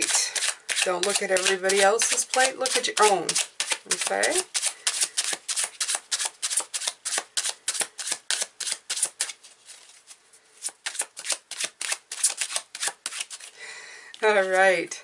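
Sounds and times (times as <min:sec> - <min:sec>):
cards being shuffled: 0:00.0 - 0:13.6.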